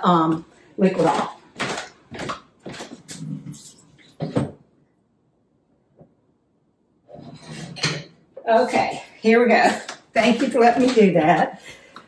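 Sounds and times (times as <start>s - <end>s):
rasping scrape: 7.1s - 8.0s.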